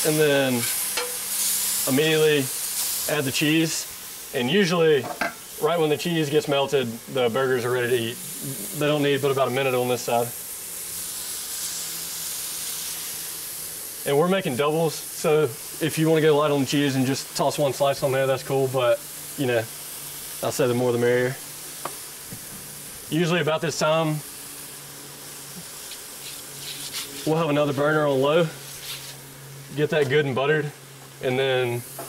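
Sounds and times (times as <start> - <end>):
burger patties sizzling on griddle: 0.0 - 32.0.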